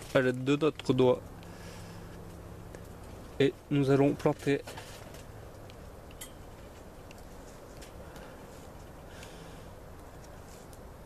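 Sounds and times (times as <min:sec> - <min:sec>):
hands working potting soil: 0:00.0 - 0:11.0
light clicks and scrapes: 0:04.1 - 0:10.9.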